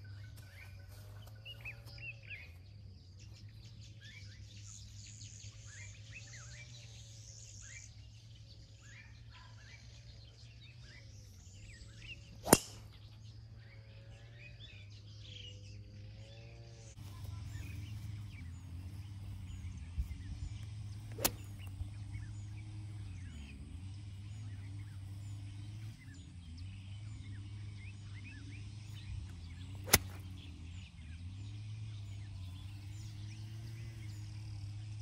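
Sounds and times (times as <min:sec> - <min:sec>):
birds chirping: 0:00.0 - 0:35.0
golf driver striking ball: 0:12.4 - 0:12.9, 0:21.1 - 0:22.3, 0:29.8 - 0:30.3.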